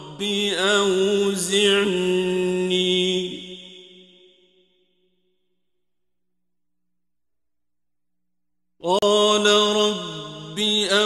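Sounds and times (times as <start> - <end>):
man chanting melodically: 0.0 - 3.9, 8.8 - 11.0.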